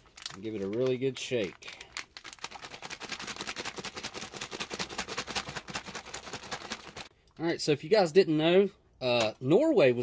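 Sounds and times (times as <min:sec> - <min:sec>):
drink pouch rustling when shaken: 0:00.0 - 0:07.1.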